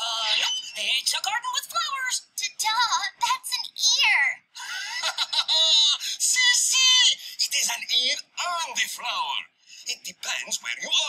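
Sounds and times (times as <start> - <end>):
high-pitched cartoon voice exclaiming: 0.0 - 4.4, 5.6 - 9.3.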